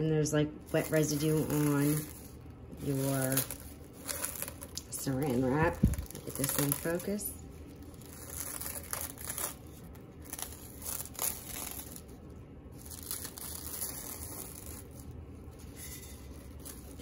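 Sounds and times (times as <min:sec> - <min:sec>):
cling wrap crinkling: 0:00.6 - 0:17.0.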